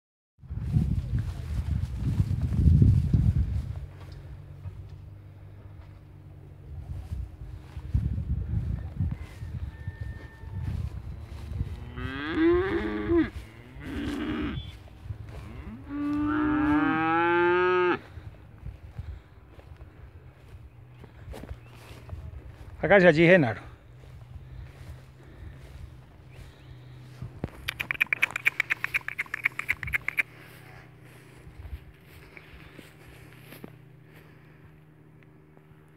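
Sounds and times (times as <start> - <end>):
calves mooing: 11.6 - 18.0
animal rapid chattering call: 27.5 - 30.6.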